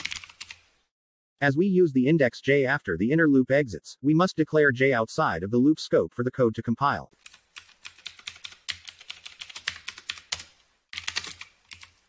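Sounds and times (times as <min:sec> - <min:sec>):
keyboard typing: 0:00.0 - 0:00.6, 0:07.2 - 0:12.0.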